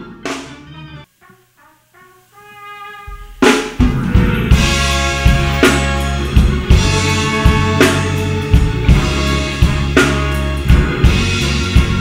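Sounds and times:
gospel band with horns playing: 0.0s - 12.0s
soft pitched notes and chord: 3.0s - 12.0s
drum hit ringing: 3.1s - 10.2s.

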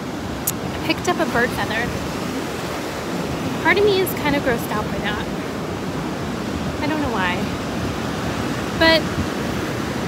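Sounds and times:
ocean surf breaking: 0.0s - 10.0s
wind on microphone: 0.0s - 10.0s.

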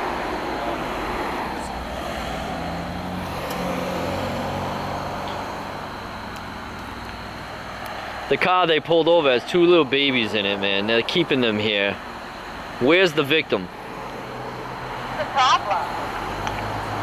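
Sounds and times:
road traffic passing: 0.0s - 17.0s.

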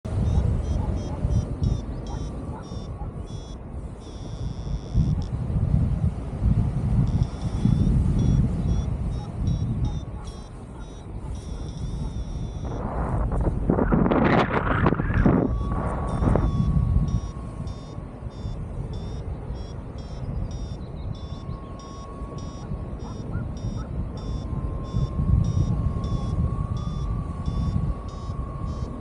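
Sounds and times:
variometer beeping: 0.0s - 5.4s, 7.0s - 29.0s
wind buffeting microphone: 0.0s - 29.0s.

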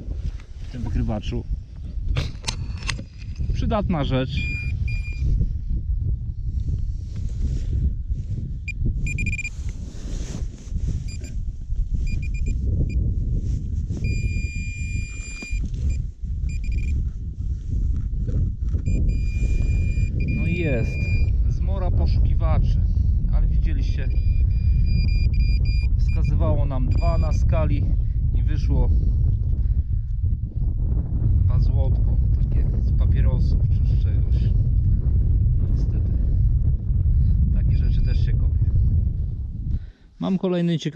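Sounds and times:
low rumble on microphone: 0.0s - 40.2s
metal detector beeping: 4.3s - 5.3s, 8.7s - 9.6s, 11.1s - 11.4s, 12.0s - 13.0s, 14.0s - 17.0s, 18.8s - 21.4s, 24.1s - 27.5s.

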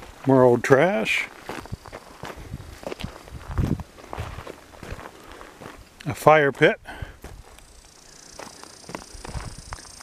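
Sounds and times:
footsteps on gravel and brush: 0.0s - 10.0s.

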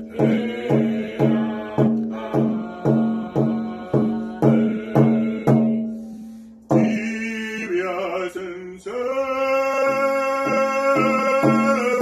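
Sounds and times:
hand drum struck with beater: 0.0s - 7.2s, 9.9s - 12.0s
person singing: 0.0s - 12.0s.

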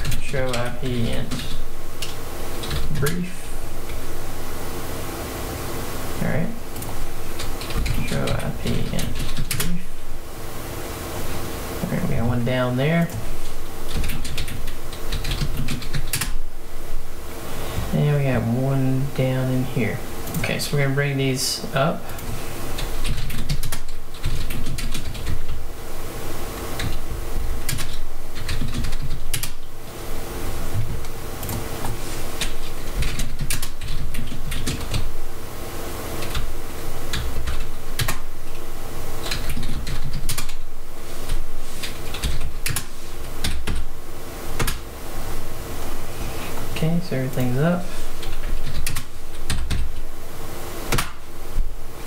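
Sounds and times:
faint steady hum: 0.0s - 52.0s
typing on computer keyboard: 7.6s - 9.8s, 13.9s - 16.3s, 22.8s - 25.5s, 27.7s - 29.6s, 39.2s - 40.6s, 42.1s - 43.8s, 48.2s - 49.9s.

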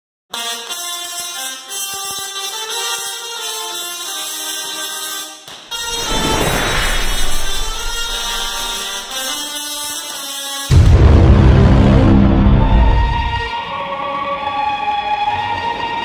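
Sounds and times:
crackling sparks: 0.6s - 11.0s
tesla coil buzzing: 5.7s - 11.0s.

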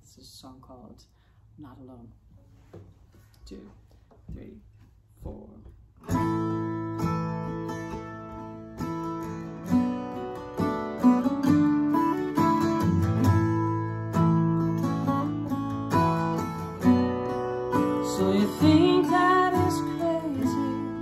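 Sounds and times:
acoustic guitar strumming chords: 6.0s - 21.0s
person singing: 17.8s - 21.0s.

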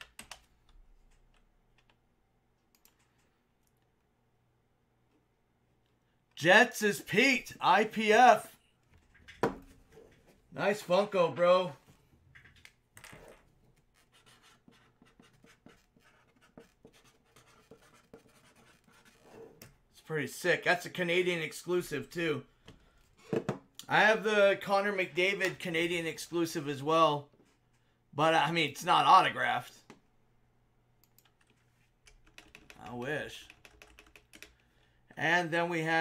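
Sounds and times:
faint keyboard typing clicks: 2.7s - 3.9s, 31.0s - 34.7s
man speaking: 6.4s - 8.6s, 10.5s - 11.8s, 20.0s - 22.5s, 23.8s - 27.3s, 28.2s - 29.8s, 32.8s - 33.5s, 35.2s - 36.0s.

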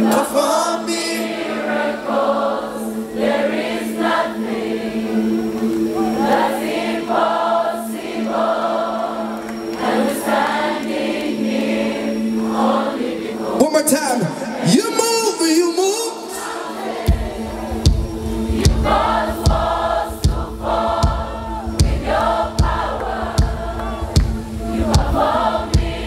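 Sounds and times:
choir singing gospel: 0.0s - 26.0s.

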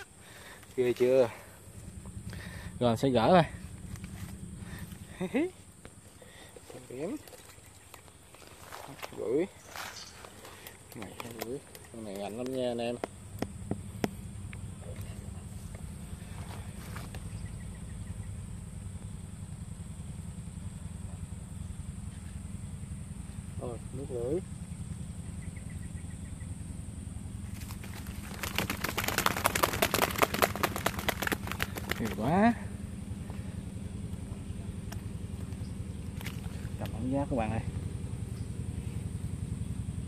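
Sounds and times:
small engine running: 0.0s - 40.0s
leaves crackling and rustling: 6.7s - 12.7s, 27.5s - 32.2s.

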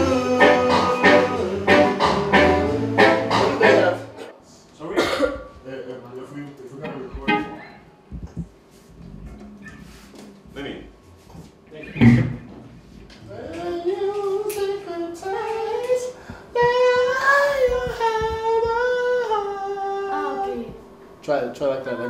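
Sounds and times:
person singing wordless melody: 0.0s - 4.3s, 13.2s - 21.0s
loud thump: 12.0s - 12.5s.

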